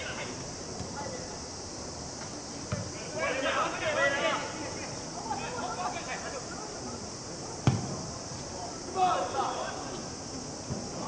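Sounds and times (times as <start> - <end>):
steady hiss: 0.0 - 11.0
football kick thump: 7.6 - 8.0.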